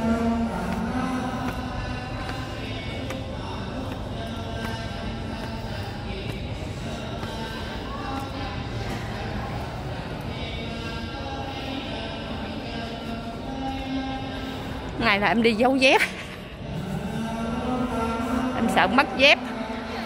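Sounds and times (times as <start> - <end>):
chanting voices with music: 0.0 - 20.0.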